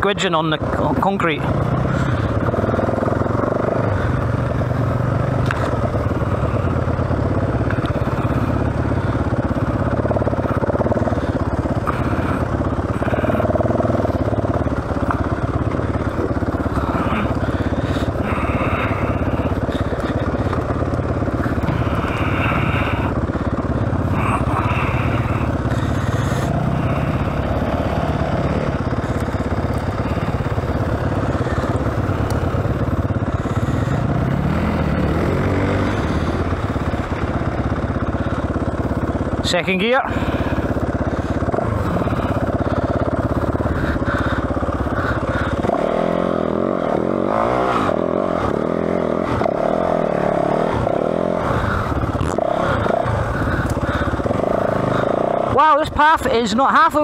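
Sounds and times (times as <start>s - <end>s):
motorcycle engine revving under load: 0.0s - 57.0s.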